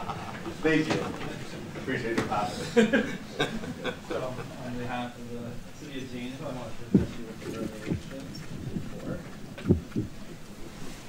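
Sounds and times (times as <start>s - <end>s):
man talking: 4.1s - 9.9s
low thump: 6.9s - 10.2s.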